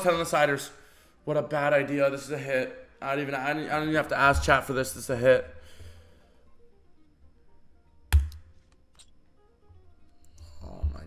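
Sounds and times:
faint background music: 0.0 - 11.0
sharp click: 8.1 - 9.1.

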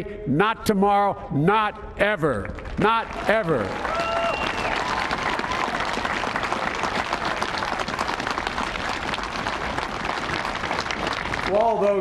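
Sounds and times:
audience applauding: 2.9 - 11.8.

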